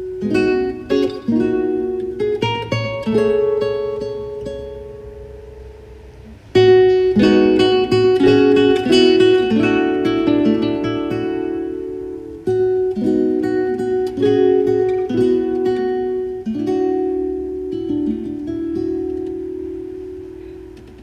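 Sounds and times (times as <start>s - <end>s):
classical guitar playing: 0.0s - 21.0s.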